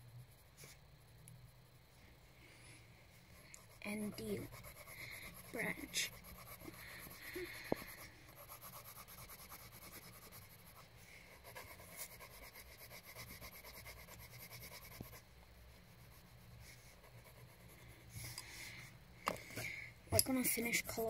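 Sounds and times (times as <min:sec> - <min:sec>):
colouring tool scratching on paper: 0:03.4 - 0:18.1.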